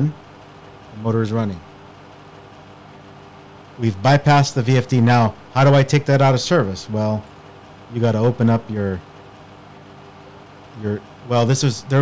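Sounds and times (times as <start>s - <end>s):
man speaking: 0.0s - 0.2s, 0.9s - 1.7s, 3.8s - 7.3s, 7.9s - 9.1s, 10.8s - 12.0s
faint background hum and hiss: 0.0s - 12.0s.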